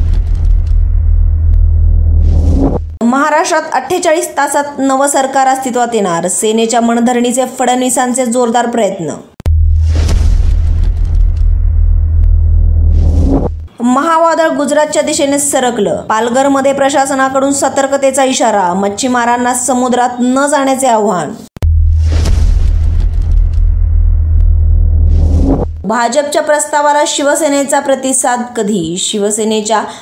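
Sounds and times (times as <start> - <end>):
deep bass rumble: 0.0 - 3.0, 9.4 - 13.7, 21.6 - 25.9
whoosh: 0.0 - 3.0, 9.4 - 13.7, 21.6 - 25.8
woman's voice: 3.0 - 9.3, 13.8 - 21.4, 25.9 - 30.0.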